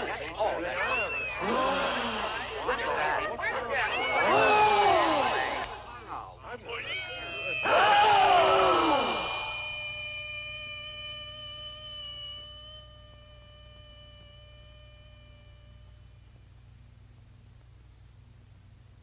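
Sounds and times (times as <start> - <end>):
held ringing tone: 0.0 - 4.6, 6.1 - 16.4
voices exclaiming loudly: 0.0 - 9.7.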